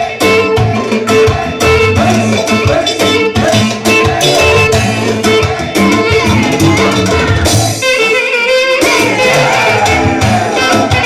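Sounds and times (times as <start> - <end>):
live dance band music: 0.0 - 11.0.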